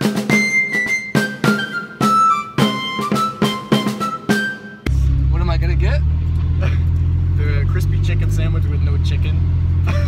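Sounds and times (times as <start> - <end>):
car engine and road rumble: 4.8 - 10.0
voice: 5.2 - 6.8, 7.4 - 10.0.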